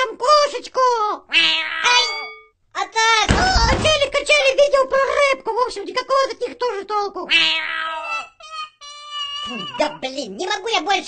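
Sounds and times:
person imitating cat meowing: 0:01.3 - 0:02.2, 0:07.3 - 0:10.1.

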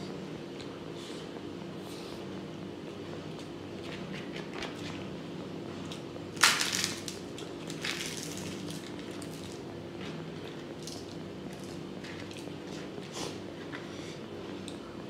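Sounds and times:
steady low hum: 0:00.0 - 0:15.0
papad crunching and crackling: 0:06.4 - 0:09.6.

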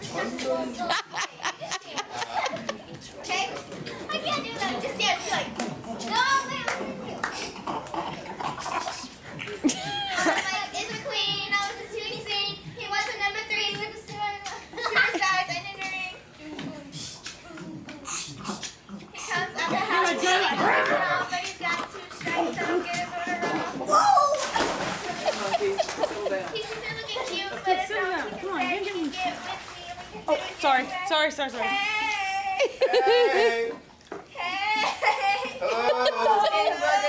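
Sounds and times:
girls talking indistinctly: 0:00.0 - 0:07.6, 0:09.8 - 0:37.0.

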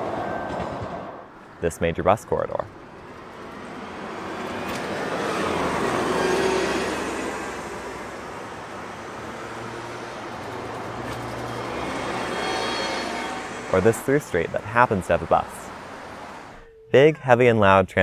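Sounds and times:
cars driving past: 0:02.5 - 0:16.6.

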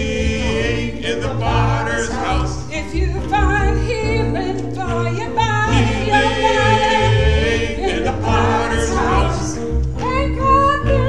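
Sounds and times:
group singing in harmony: 0:00.0 - 0:11.0
upright piano: 0:00.0 - 0:11.0.

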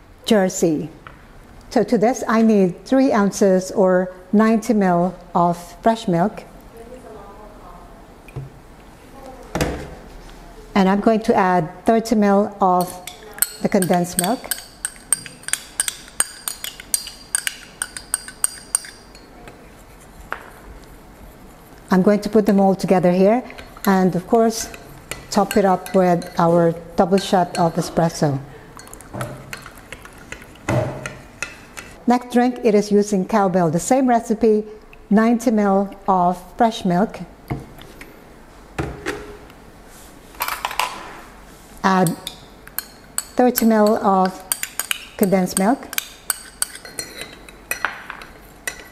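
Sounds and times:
metal spoon clinking on glass: 0:12.8 - 0:19.3, 0:42.0 - 0:48.9.

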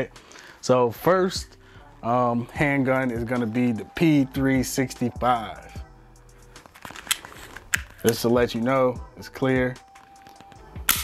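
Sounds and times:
faint background music: 0:00.0 - 0:11.0
pistol metallic clicks: 0:06.8 - 0:08.3, 0:10.0 - 0:11.0.

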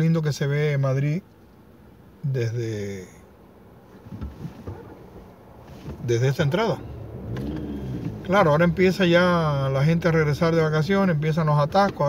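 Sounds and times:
car engine idling: 0:01.3 - 0:12.0.

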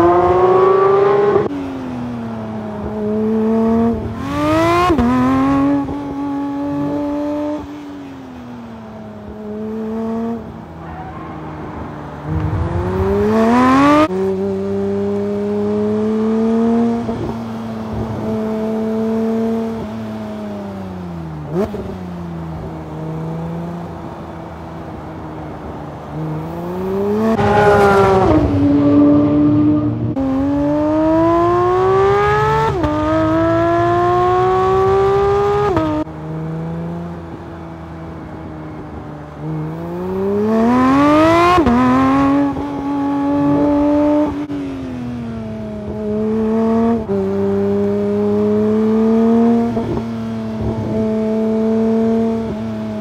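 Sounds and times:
car engine accelerating hard: 0:09.2 - 0:20.2, 0:22.6 - 0:37.5.

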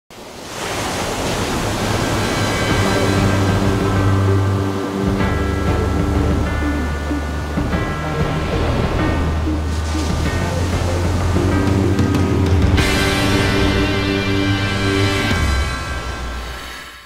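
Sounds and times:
stormy sea surf: 0:00.1 - 0:17.0
wind: 0:00.1 - 0:17.0
sustained music chords: 0:01.6 - 0:17.0
deep bass: 0:03.2 - 0:16.2.

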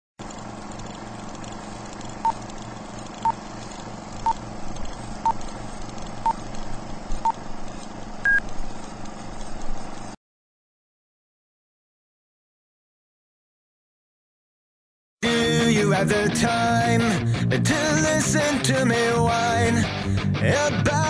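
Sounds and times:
film hum with crackle and clicks: 0:00.2 - 0:10.2.

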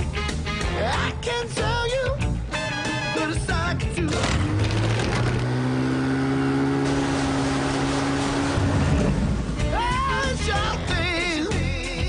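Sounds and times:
motorboat engine revving: 0:04.0 - 0:10.2.

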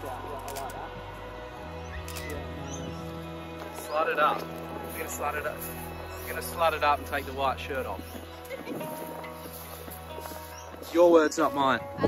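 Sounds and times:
background music with held chords: 0:00.0 - 0:12.0.

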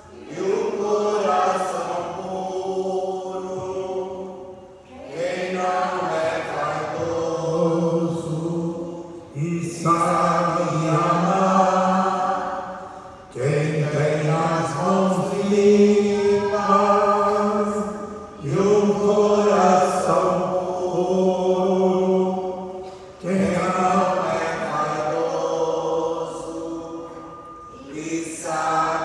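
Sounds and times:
man singing a chant: 0:05.1 - 0:12.6, 0:13.3 - 0:29.0.

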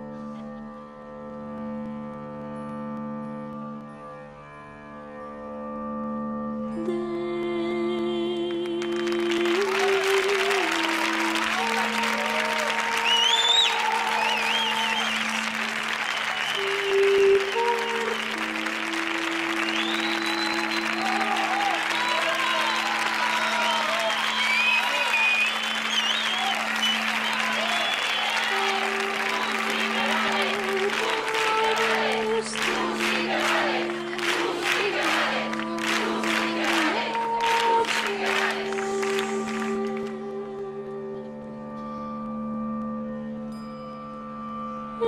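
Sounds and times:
slow music with held notes: 0:00.0 - 0:45.0
audience applauding: 0:08.5 - 0:40.2
audience cheering and whooping: 0:09.6 - 0:39.0.

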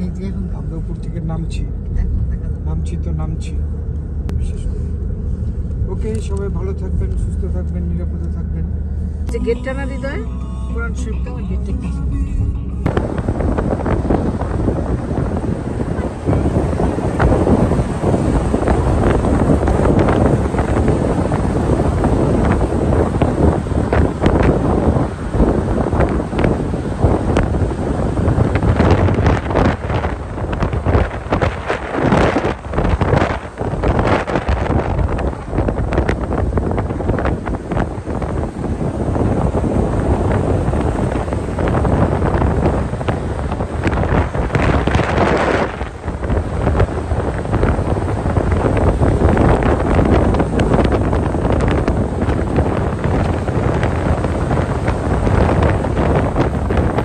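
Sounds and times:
road and tyre rumble: 0:00.0 - 0:57.0
wind buffeting microphone: 0:10.8 - 0:57.0.

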